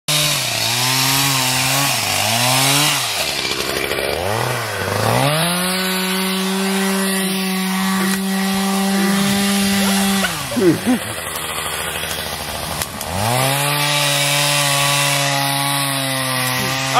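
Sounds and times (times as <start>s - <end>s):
chainsaw cutting wood: 0.1s - 16.9s.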